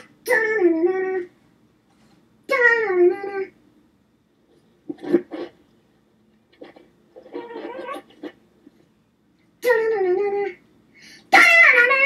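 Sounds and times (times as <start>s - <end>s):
high-pitched whiny cry: 7.2s - 8.3s, 11.3s - 12.0s.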